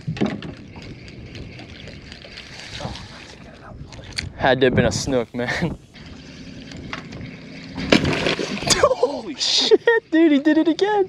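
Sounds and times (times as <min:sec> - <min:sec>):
fish splashing: 0:00.0 - 0:03.6, 0:05.9 - 0:09.6
water noise: 0:00.0 - 0:11.0
wind: 0:00.0 - 0:11.0.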